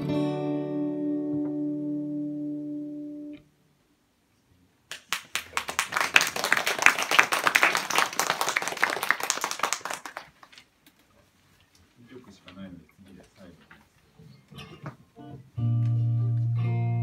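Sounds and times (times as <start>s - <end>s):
audience clapping: 4.9s - 10.7s.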